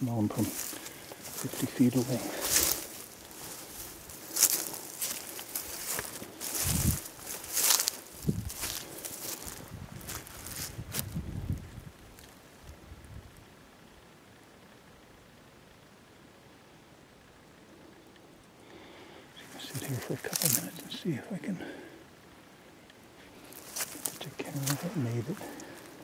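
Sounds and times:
brush rustling against clothing: 0:00.0 - 0:11.2, 0:19.4 - 0:21.0, 0:23.4 - 0:26.0
footsteps: 0:00.0 - 0:11.2, 0:19.6 - 0:20.8, 0:23.4 - 0:26.0
faint outdoor background: 0:00.0 - 0:26.0.

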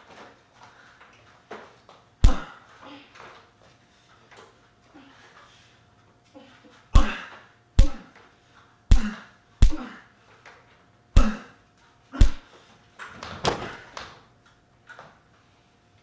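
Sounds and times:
thumps of blows landing: 0:12.2 - 0:12.4.

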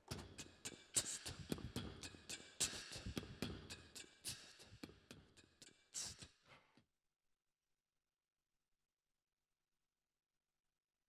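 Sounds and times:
beatboxing into a microphone: 0:00.0 - 0:06.4.

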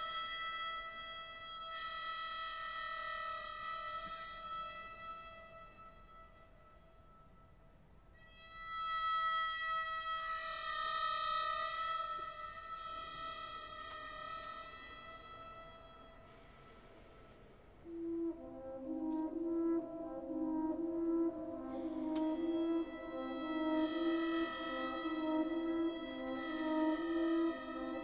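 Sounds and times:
harmonica high note: 0:08.2 - 0:28.0
orchestra pulsing chords: 0:17.8 - 0:28.0.

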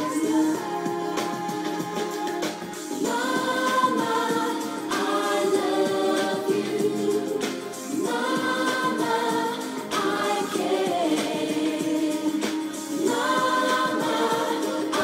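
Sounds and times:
several voices singing together: 0:00.0 - 0:15.0.

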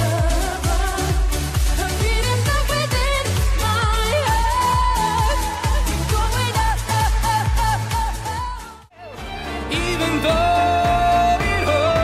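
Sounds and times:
dance-pop song: 0:00.0 - 0:12.0.

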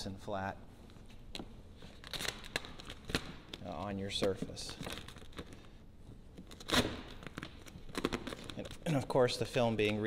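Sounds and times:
vinyl film crinkling: 0:00.9 - 0:05.8, 0:06.4 - 0:10.0.

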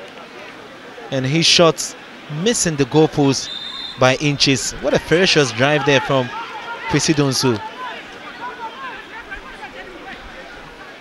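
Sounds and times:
chatter of people: 0:00.0 - 0:11.0
distant shouts: 0:02.5 - 0:11.0.

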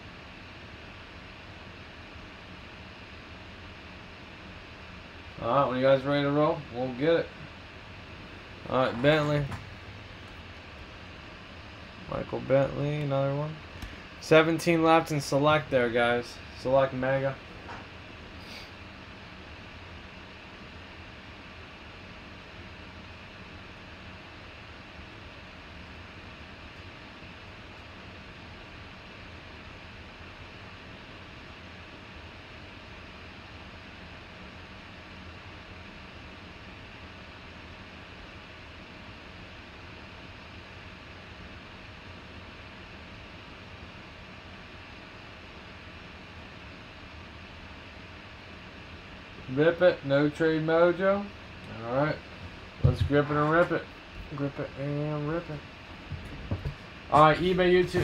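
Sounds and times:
faint constant hum: 0:00.0 - 0:58.0.

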